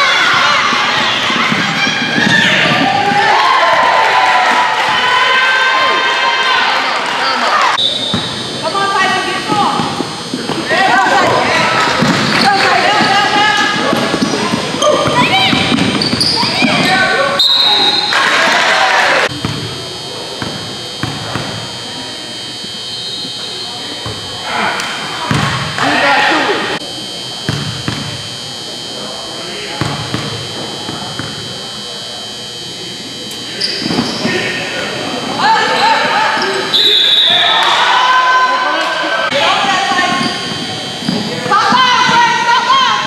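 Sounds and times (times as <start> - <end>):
voices shouting and echoing: 0.0 - 43.0.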